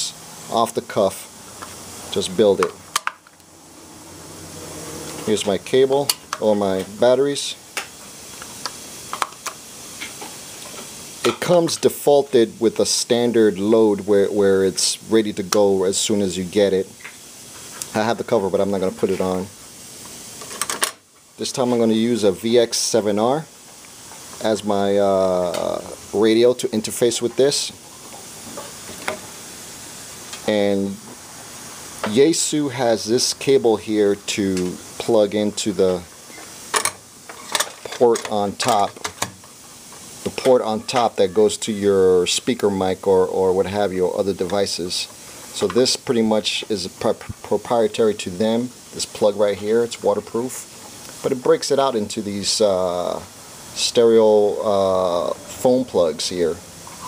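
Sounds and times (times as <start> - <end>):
steady hiss: 0.0 - 57.0.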